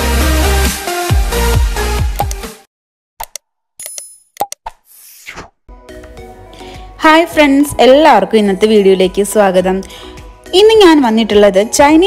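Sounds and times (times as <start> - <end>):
background music: 0.0 - 2.7, 5.7 - 12.0.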